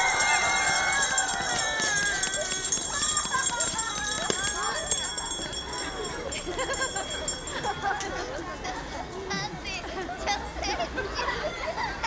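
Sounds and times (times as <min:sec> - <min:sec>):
children shouting and squealing: 0:00.0 - 0:05.0.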